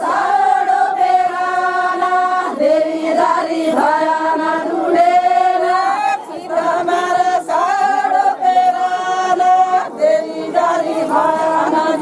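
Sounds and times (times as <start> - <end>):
women singing in unison: 0.0 - 12.0.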